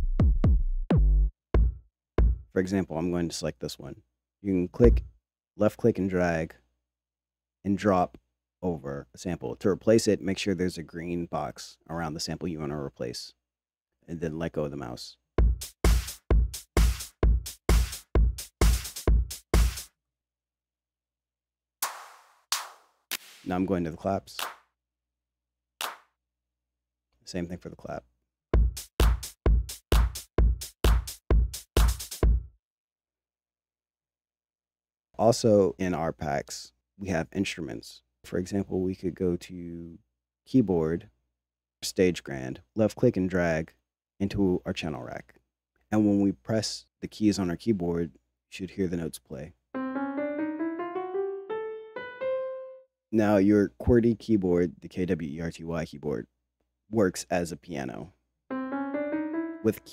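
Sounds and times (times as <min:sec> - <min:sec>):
drum machine clap: 0:00.0 - 0:02.4, 0:04.8 - 0:05.1, 0:15.4 - 0:19.9, 0:21.8 - 0:23.5, 0:24.4 - 0:24.6, 0:25.8 - 0:26.1, 0:28.6 - 0:32.5
piano playing rising notes: 0:49.8 - 0:52.8, 0:58.5 - 0:59.9.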